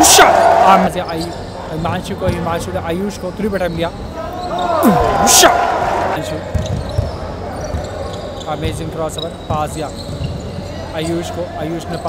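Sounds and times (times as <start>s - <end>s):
sneakers squeaking on wooden court: 3.2s - 5.3s, 6.4s - 12.0s.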